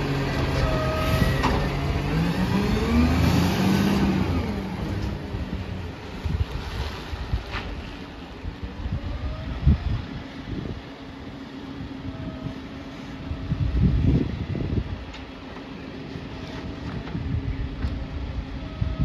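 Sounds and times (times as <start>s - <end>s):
garbage truck engine revving: 0.0s - 6.0s.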